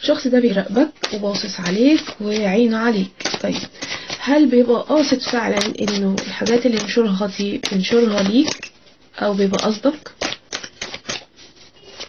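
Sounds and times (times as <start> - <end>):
cards being shuffled: 1.0 - 12.0.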